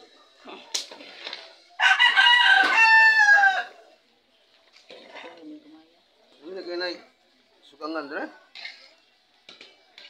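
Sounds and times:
rooster crowing: 0:01.8 - 0:03.8.

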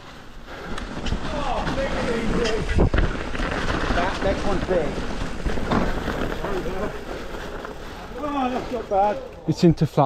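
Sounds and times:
mountain bike tyres on dirt: 0:00.0 - 0:10.0
bike thump: 0:00.7 - 0:06.8.

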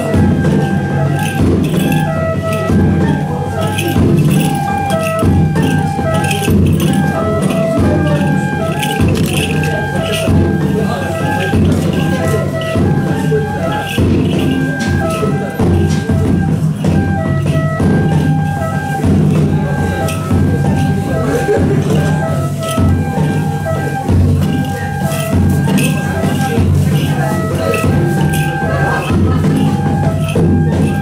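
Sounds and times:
bamboo flute melody: 0:00.0 - 0:31.0
deep taiko drum beat: 0:00.0 - 0:31.0
hand bells jingling: 0:00.0 - 0:31.0.

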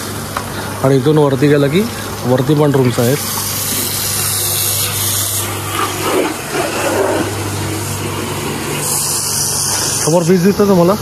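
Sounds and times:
constant hiss: 0:00.0 - 0:11.0.

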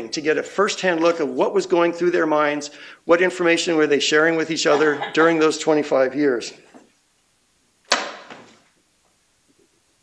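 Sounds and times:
sharp knock: 0:07.9 - 0:08.5.

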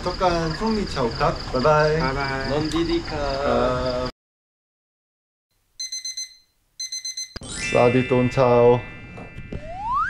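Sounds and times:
alarm clock beeping: 0:05.8 - 0:10.0.

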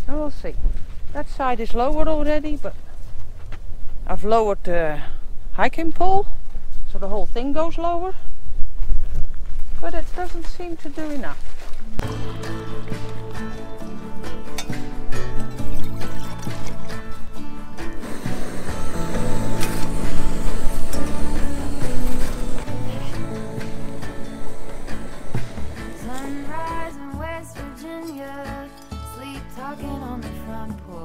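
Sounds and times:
background music: 0:11.9 - 0:31.0.

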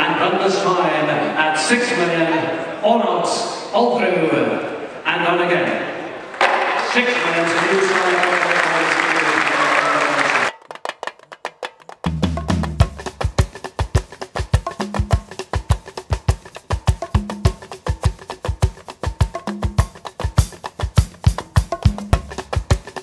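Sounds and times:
crowd applause with voices: 0:06.3 - 0:10.6
deep drum beat: 0:12.0 - 0:23.0.

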